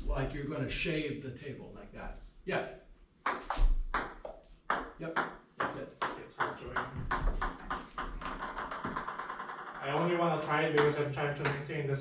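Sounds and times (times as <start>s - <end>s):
table tennis ball clicks: 6.1s - 10.1s.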